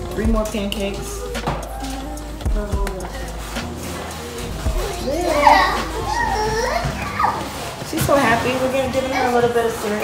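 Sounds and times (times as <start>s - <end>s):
toddler squealing and babbling: 4.8s - 7.7s.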